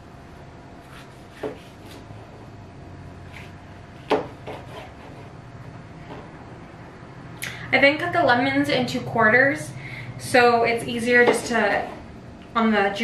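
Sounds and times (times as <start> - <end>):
knife cutting lemon peel: 0.8 - 2.2.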